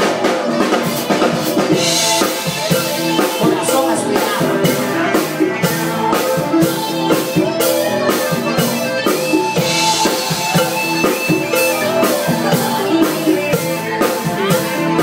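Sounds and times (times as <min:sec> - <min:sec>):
drum kit beat: 0:00.0 - 0:15.0
electric guitar: 0:00.0 - 0:15.0.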